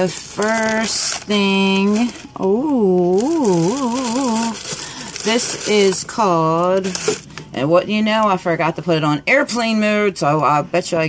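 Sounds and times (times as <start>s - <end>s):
woman singing wordless tune: 1.9s - 4.6s.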